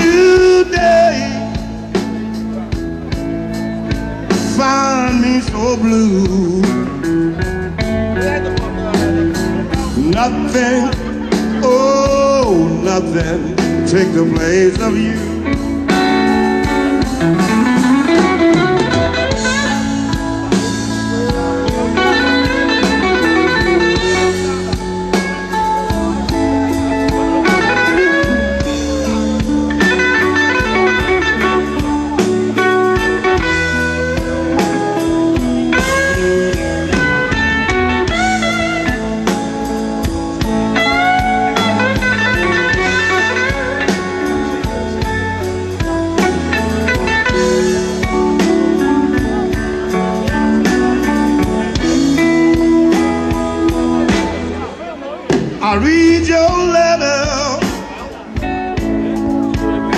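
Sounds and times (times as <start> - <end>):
bass guitar: 0.0 - 59.9
drums: 0.0 - 59.9
electric guitar lead with bends: 0.0 - 59.9.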